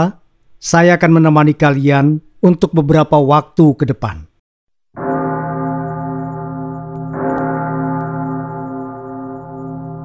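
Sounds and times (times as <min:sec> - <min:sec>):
deep bell ringing: 0:05.0 - 0:10.0.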